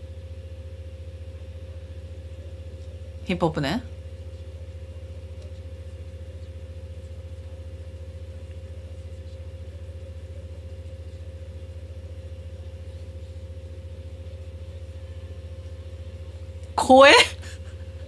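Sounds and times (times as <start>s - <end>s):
low droning hum with flutter: 0.0s - 18.0s.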